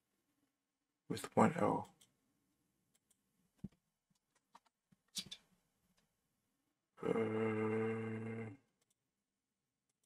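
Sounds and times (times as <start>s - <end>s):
person saying uhhh: 7.0s - 8.6s.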